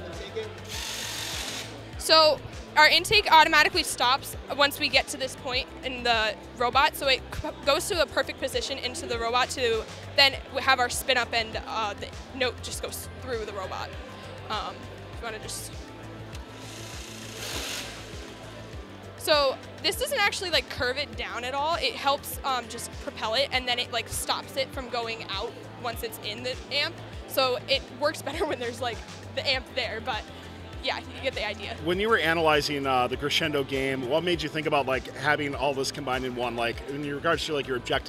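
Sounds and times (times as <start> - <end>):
background music with steady beat: 0.0 - 38.0.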